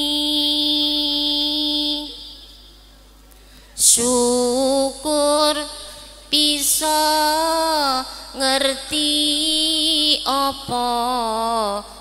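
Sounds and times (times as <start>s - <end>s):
woman singing a long note: 0.0s - 2.4s, 3.8s - 12.0s.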